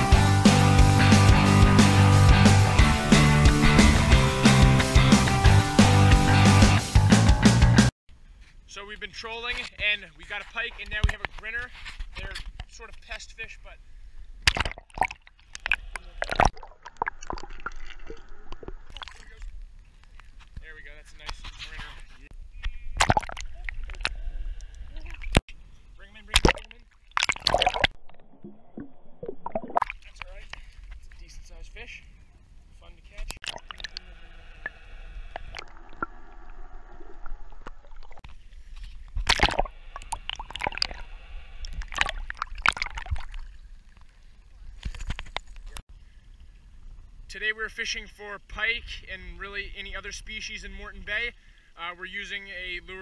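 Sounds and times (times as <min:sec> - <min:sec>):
water splashes: 0:14.4 - 0:20.4, 0:22.9 - 0:25.4, 0:26.0 - 0:31.6, 0:33.1 - 0:45.8
loud splashes: 0:26.3 - 0:30.4, 0:33.4 - 0:38.2, 0:39.2 - 0:41.1, 0:41.7 - 0:43.5
muffled water sloshing underwater: 0:26.3 - 0:31.0, 0:32.1 - 0:47.3.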